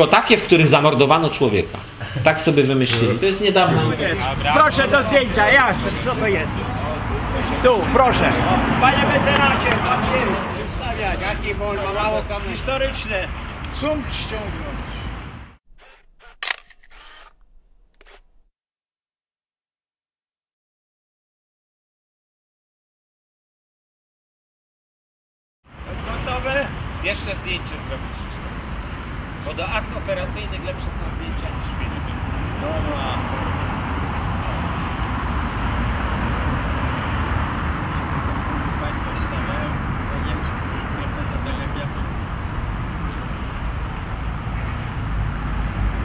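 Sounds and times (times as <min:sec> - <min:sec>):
camera shutters clicking: 0:15.7 - 0:18.5.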